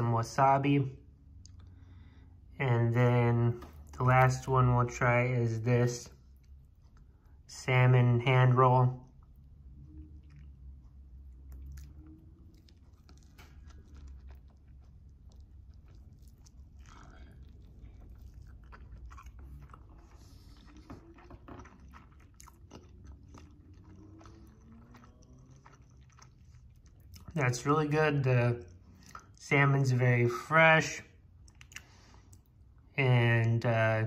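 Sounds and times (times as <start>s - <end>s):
person chewing food: 1.1s - 2.3s, 6.0s - 7.6s, 8.5s - 29.5s, 31.2s - 32.9s.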